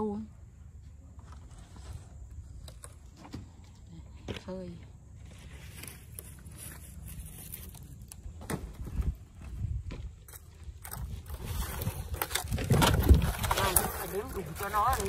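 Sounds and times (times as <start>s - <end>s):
wood scraps stepped on: 7.3s - 15.0s.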